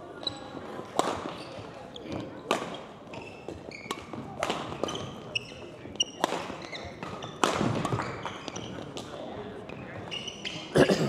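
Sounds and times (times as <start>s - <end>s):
shoes squeaking on floor: 0.2s - 10.8s
rackets hitting shuttlecock: 0.8s - 10.6s.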